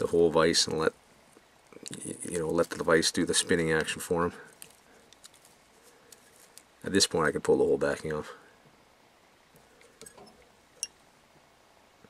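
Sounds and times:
soft rustles: 0:01.2 - 0:06.9
plastic backing peeling: 0:01.9 - 0:06.7.

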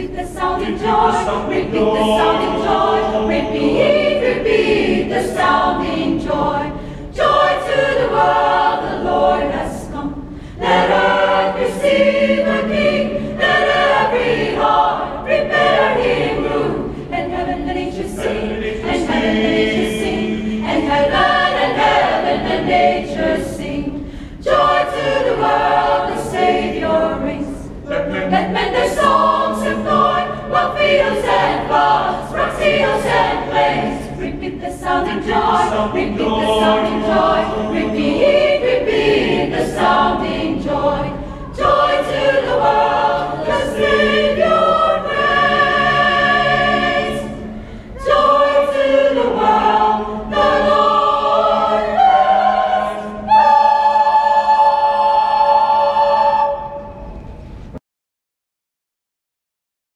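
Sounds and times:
choir singing a hymn: 0:00.0 - 0:57.8.

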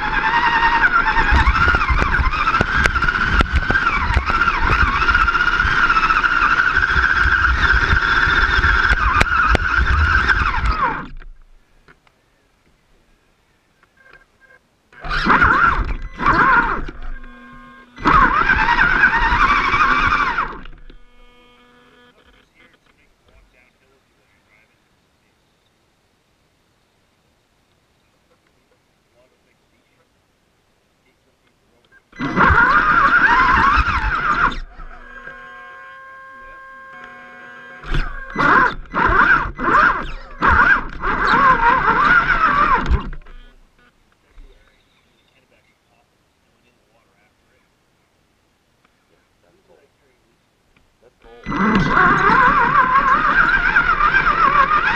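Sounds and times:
electric motor and gearbox whining: 0:00.0 - 0:11.6, 0:14.9 - 0:23.4, 0:32.1 - 0:44.7, 0:51.2 - 0:54.9.

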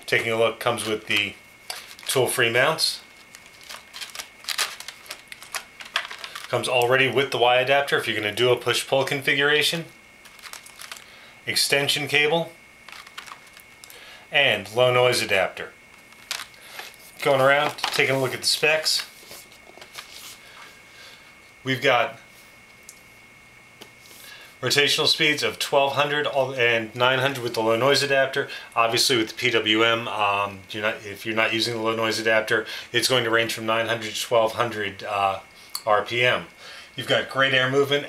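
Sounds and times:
plastic clicks and rustles: 0:03.2 - 0:06.6, 0:10.2 - 0:11.1, 0:12.9 - 0:13.9, 0:16.0 - 0:17.0.

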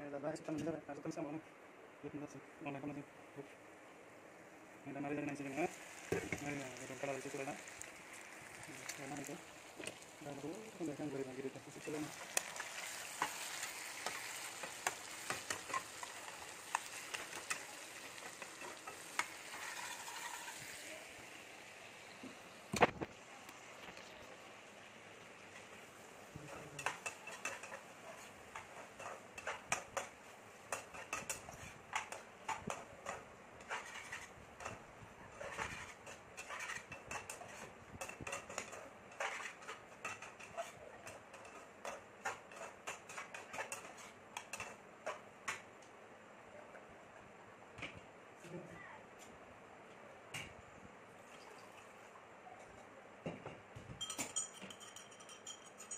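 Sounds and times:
food sizzling in oil: 0:04.4 - 0:45.6
metal spatula clinking on frying pan: 0:54.0 - 0:55.9.

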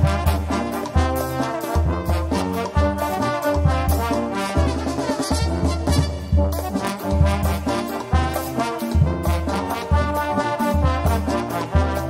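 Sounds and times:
drums: 0:00.0 - 0:12.0
trumpets and trombones: 0:00.0 - 0:12.0.

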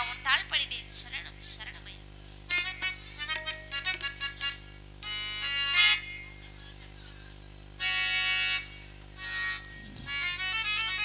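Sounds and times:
harmonium chords: 0:02.5 - 0:07.0, 0:07.6 - 0:11.0.

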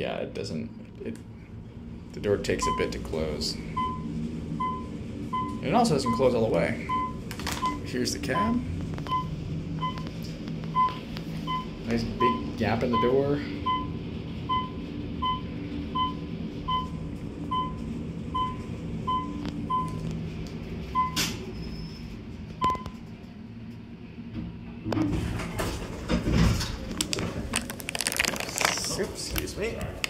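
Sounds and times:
elevator car humming: 0:00.0 - 0:30.0
elevator floor beeps: 0:02.6 - 0:03.1, 0:03.7 - 0:20.1, 0:20.9 - 0:23.1
elevator doors opening: 0:02.6 - 0:28.0.

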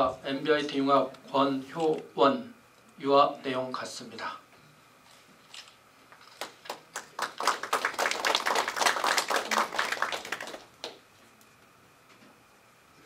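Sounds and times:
group of people clapping: 0:06.3 - 0:11.0.

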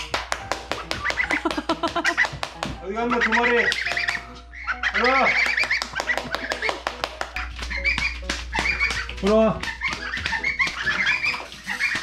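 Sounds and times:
goslings peeping: 0:02.9 - 0:06.7, 0:07.3 - 0:12.0.

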